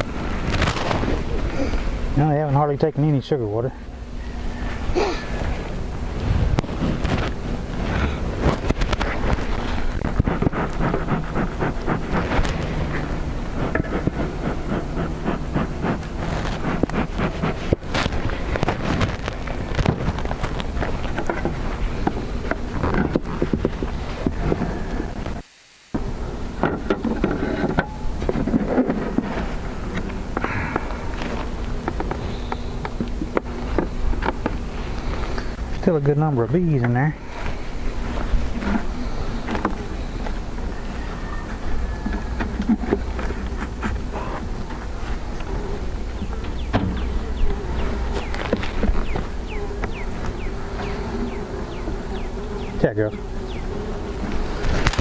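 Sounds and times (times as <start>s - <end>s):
honeybees humming: 0.0s - 55.0s
wind rumbling on microphone: 4.4s - 25.4s
wooden hive parts knocking: 46.1s - 55.0s.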